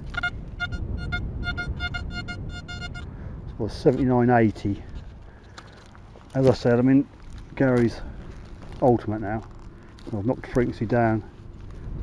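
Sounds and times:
metal detector short beeps: 0:00.0 - 0:03.1.

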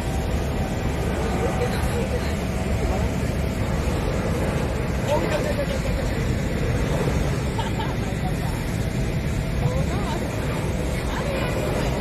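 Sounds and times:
loud jet engine rumble: 0:00.0 - 0:12.0.

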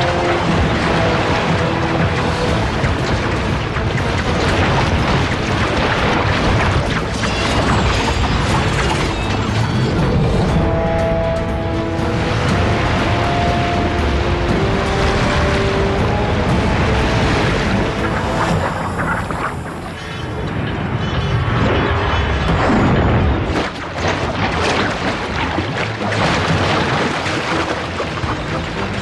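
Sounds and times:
booms and crashes: 0:00.0 - 0:10.5
dramatic film score: 0:00.0 - 0:29.0.

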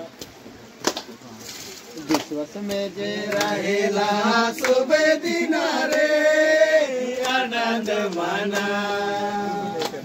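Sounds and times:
person singing devotional song: 0:02.3 - 0:10.0.

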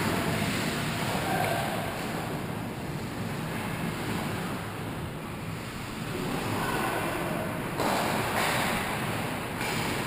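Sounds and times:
ice hockey rink ambience: 0:00.0 - 0:10.0.

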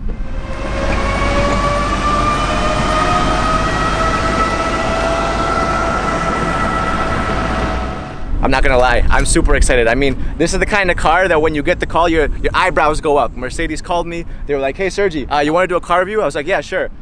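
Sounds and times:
electric car whine rising in pitch: 0:00.0 - 0:08.4
road and wind noise: 0:00.0 - 0:17.0.

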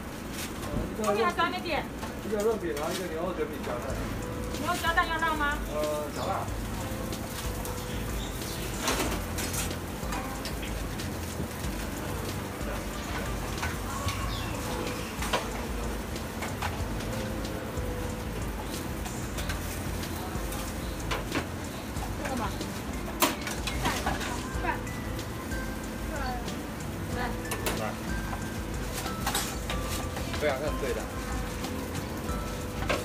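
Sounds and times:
food sizzling on griddle: 0:00.0 - 0:33.0.

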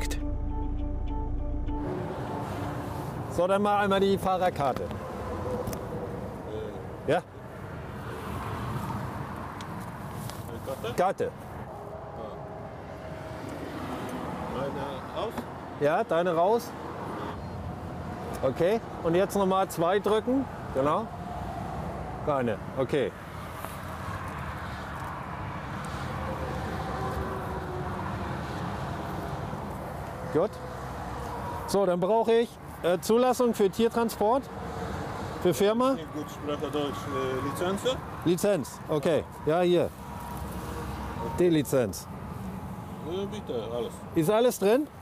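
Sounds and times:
low rumble of traffic: 0:00.0 - 0:45.0.

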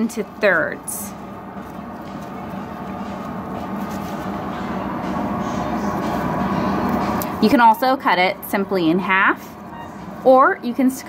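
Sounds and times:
rumbling drone with low hum: 0:00.0 - 0:11.0.

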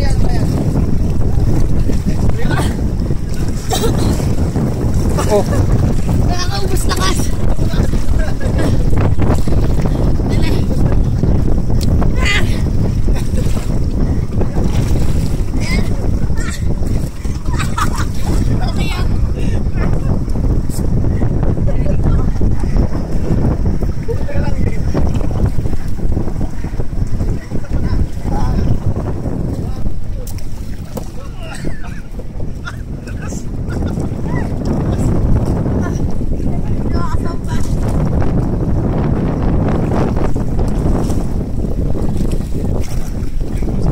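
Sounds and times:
water splashing against boat: 0:00.0 - 0:43.9
wind rumble on microphone: 0:00.0 - 0:43.9.

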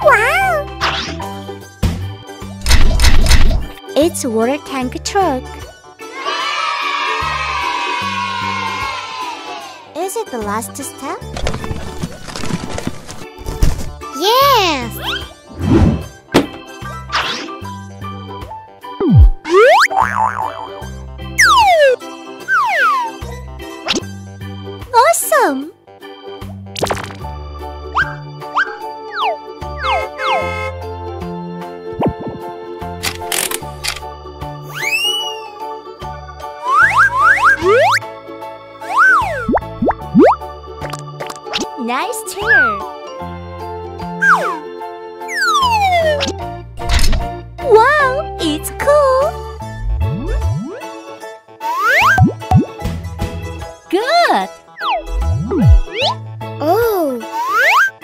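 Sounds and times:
bouncy children's music: 0:00.0 - 0:01.8, 0:03.8 - 0:11.3, 0:14.0 - 0:15.5, 0:16.5 - 0:23.8, 0:27.5 - 0:32.9, 0:34.4 - 0:46.5, 0:47.6 - 0:58.0
cartoon boings: 0:19.0 - 0:20.8
slide whistle glides: 0:34.7 - 0:35.5
slide whistle swoops: 0:34.7 - 0:35.5, 0:36.6 - 0:38.0.

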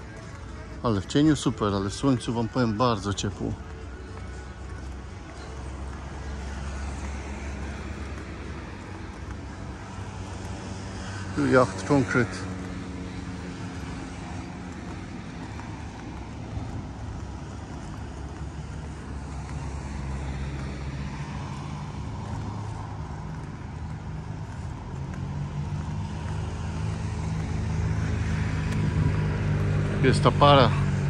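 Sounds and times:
low engine hum: 0:00.0 - 0:31.0
outdoor background noise: 0:00.0 - 0:31.0.

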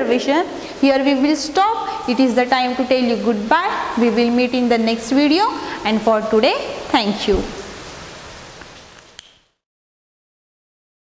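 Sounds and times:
faint room hiss: 0:00.0 - 0:09.6.

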